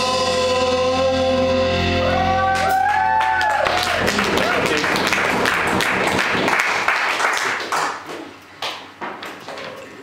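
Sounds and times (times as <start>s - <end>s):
audience applauding: 2.5s - 8.9s.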